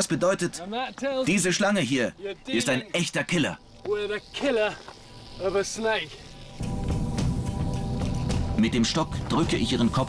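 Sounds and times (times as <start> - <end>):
background music: 5.0 - 10.0.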